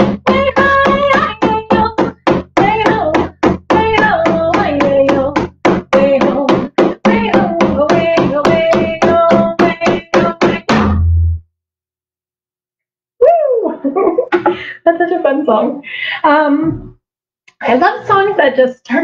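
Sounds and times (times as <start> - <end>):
woman singing: 0.0 - 10.8
fast drumbeat: 0.0 - 11.1.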